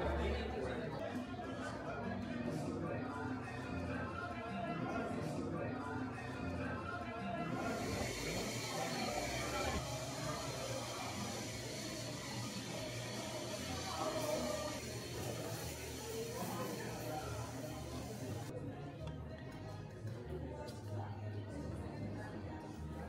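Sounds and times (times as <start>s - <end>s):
background music: 0.0s - 23.0s
many people talking: 0.0s - 23.0s.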